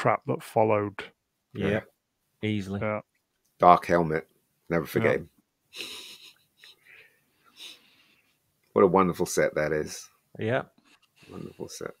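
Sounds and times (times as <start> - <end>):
mouth noise: 1.6 - 1.8
faint breathing at microphone: 6.7 - 8.5, 10.8 - 11.8.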